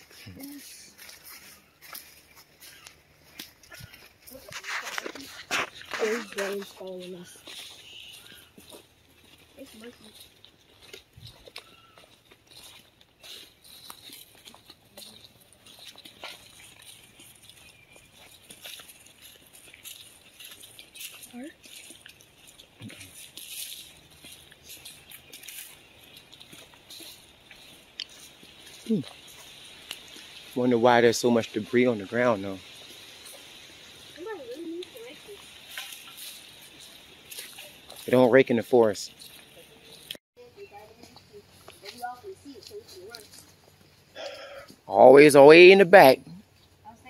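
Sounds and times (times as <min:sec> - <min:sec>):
footsteps on dry leaves: 0:00.0 - 0:47.0.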